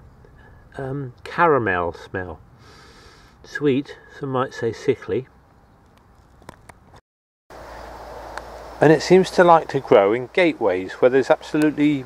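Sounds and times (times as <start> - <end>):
low outdoor rumble: 0.0 - 6.9, 7.6 - 12.0
faint outdoor background noise: 0.0 - 12.0
small clicks: 5.8 - 6.8.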